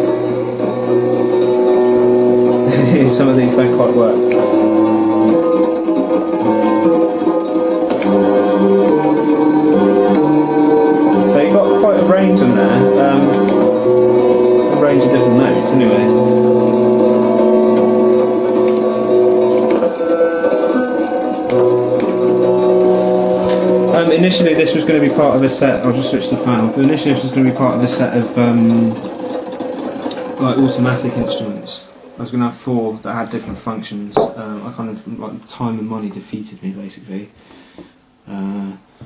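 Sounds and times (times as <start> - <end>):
electric lyre held notes: 0.0 - 32.4.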